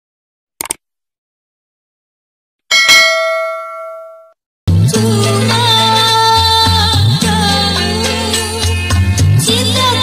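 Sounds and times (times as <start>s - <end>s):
bright bell ding: 2.7s - 4.4s
music: 4.7s - 10.0s.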